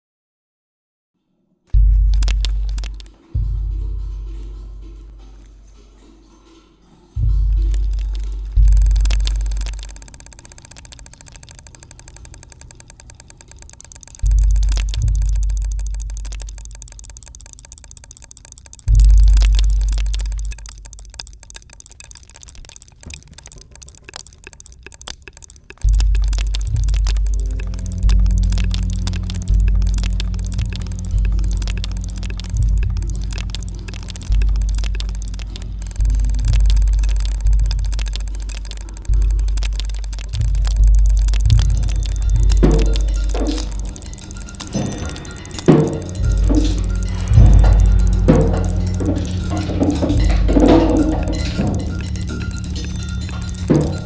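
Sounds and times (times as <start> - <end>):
rapid ticking and clicking: 1.7 - 5.7, 7.2 - 54.0
steady low hum: 7.2 - 54.0
sharp drum-like hits: 44.8 - 52.2.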